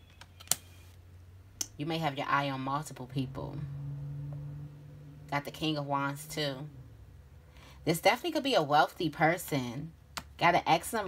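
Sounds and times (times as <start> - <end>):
woman speaking: 1.6 - 3.7, 5.3 - 6.8, 7.8 - 11.0.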